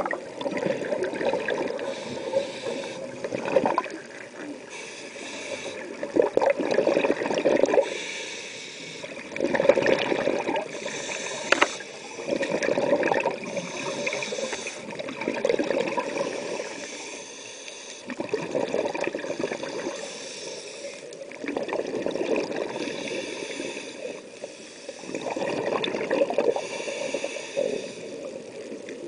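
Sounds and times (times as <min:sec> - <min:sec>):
air bubbling out underwater: 0:00.0 - 0:01.9, 0:09.4 - 0:10.7, 0:12.3 - 0:13.5, 0:18.2 - 0:19.5, 0:25.2 - 0:26.6
regulator hiss on inhalation: 0:01.8 - 0:03.2, 0:04.7 - 0:06.0, 0:07.8 - 0:09.2, 0:10.7 - 0:12.4, 0:13.4 - 0:14.9, 0:16.1 - 0:18.1, 0:19.2 - 0:21.1, 0:22.7 - 0:25.2, 0:26.5 - 0:28.3.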